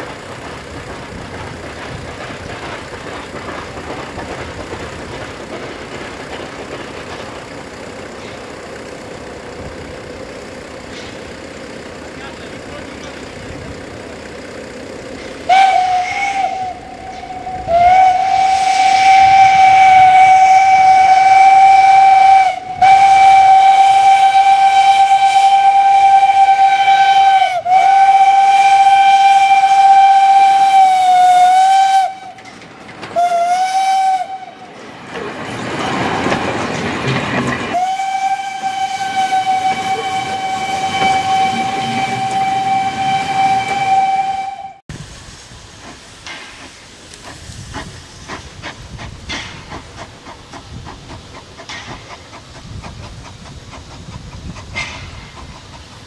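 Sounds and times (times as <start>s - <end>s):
steam hissing: 0.0s - 56.0s
steam locomotive whistle: 15.4s - 34.8s, 37.7s - 44.8s.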